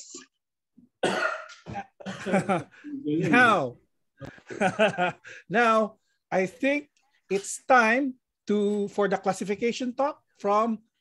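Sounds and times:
person speaking over video call: 2.7s - 4.6s, 5.3s - 11.0s.

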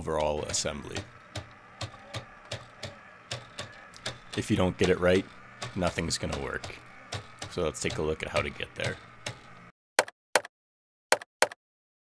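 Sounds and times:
plastic escapement ticking: 0.0s - 9.7s.

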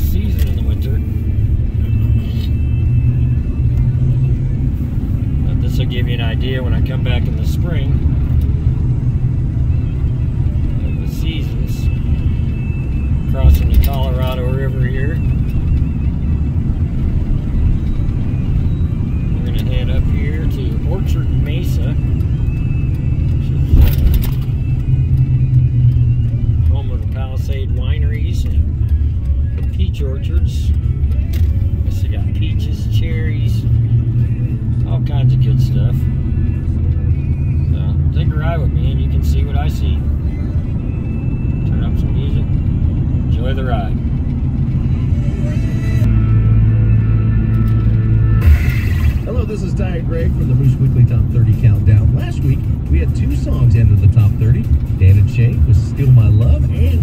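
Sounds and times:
car engine and road rumble: 0.0s - 57.0s
car radio music: 0.0s - 57.0s
voice on radio: 19.4s - 22.1s, 49.2s - 57.0s.

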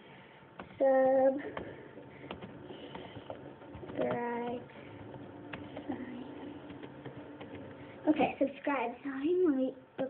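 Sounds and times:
low room noise: 0.0s - 10.0s
keyboard keys clicking: 0.6s - 7.8s.

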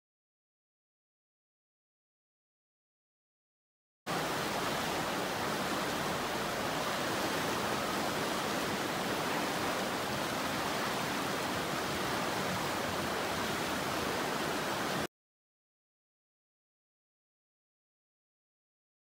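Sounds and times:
water rushing over weir: 4.1s - 15.1s.

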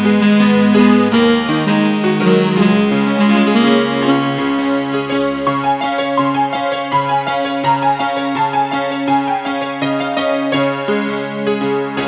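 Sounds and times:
slow instrumental music: 0.0s - 12.0s.

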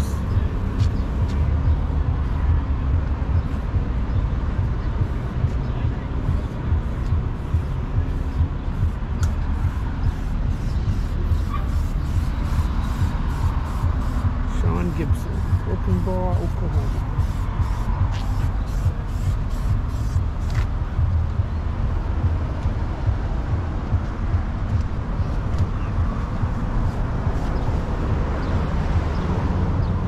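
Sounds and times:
steady low rumble: 0.0s - 30.0s.

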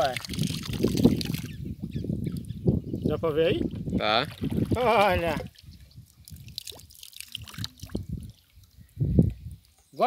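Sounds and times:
water trickling and dripping: 0.0s - 10.0s.

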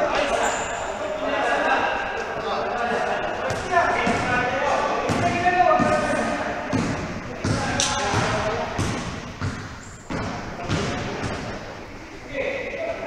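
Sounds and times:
basketball bouncing: 5.0s - 6.1s, 6.7s - 11.6s.

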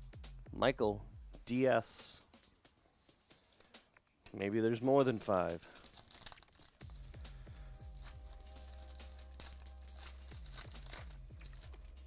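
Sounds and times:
faint background music: 0.0s - 12.0s
foil wrapper crinkling and tearing: 5.1s - 12.0s.

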